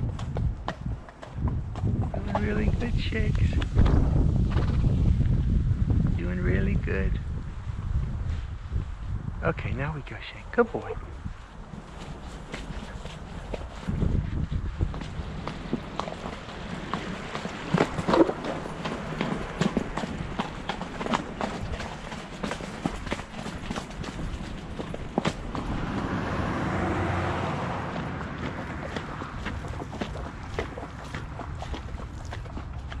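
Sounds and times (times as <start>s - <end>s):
horse hoofbeats on dirt trail: 0.0s - 8.9s, 10.8s - 33.0s
wind on microphone: 0.0s - 33.0s
rush of noise: 25.3s - 30.6s.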